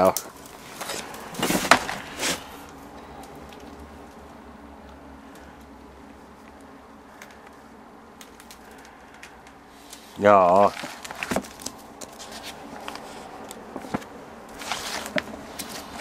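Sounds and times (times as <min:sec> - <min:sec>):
magazine rustling and scraping: 0:00.2 - 0:03.8, 0:07.2 - 0:16.0.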